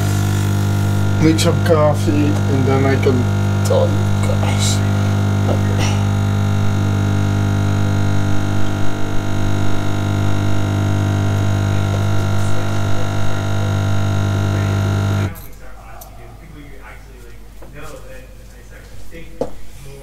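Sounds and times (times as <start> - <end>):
coffee machine pump buzzing: 0.0 - 15.4.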